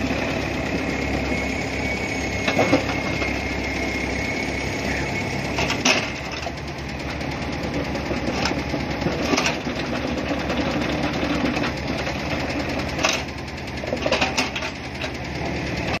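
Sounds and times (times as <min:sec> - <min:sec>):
diesel engine running: 0:00.0 - 0:16.0.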